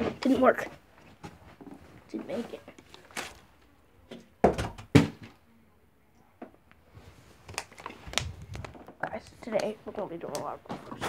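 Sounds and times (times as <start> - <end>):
plastic bottle thudding: 4.1 - 5.4.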